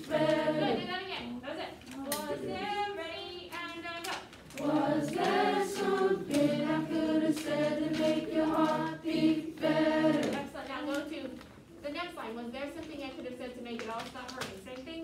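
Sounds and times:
choir singing held notes: 0.0s - 0.9s, 4.6s - 10.5s.

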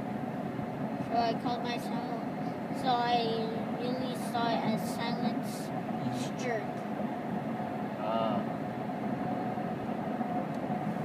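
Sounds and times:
road noise inside moving car: 0.0s - 11.0s.

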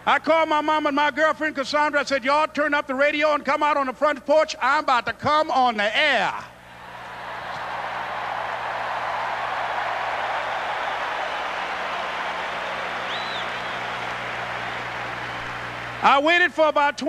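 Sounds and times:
audience applause: 6.8s - 16.0s
short high whistle: 13.0s - 14.0s.

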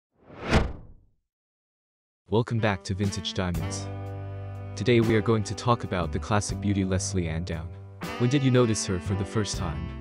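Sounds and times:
whoosh: 0.2s - 1.0s.

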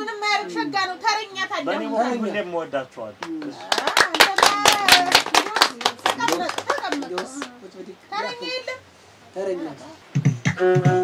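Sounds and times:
people clapping in rhythm: 3.2s - 7.6s, 10.1s - 11.0s.

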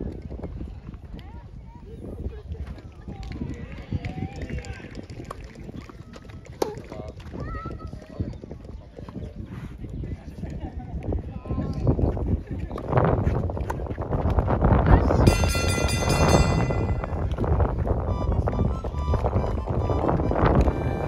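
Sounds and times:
wind rumbling on microphone: 0.0s - 21.0s.

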